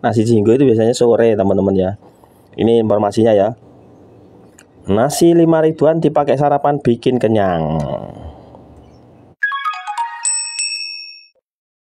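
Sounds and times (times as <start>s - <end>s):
electronic chime jingle: 9.4s - 11.4s.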